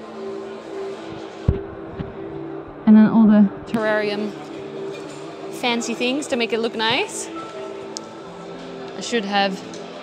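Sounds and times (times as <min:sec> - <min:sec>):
background music held notes: 0:00.0 - 0:10.0
busy hall crowd noise: 0:00.0 - 0:10.0.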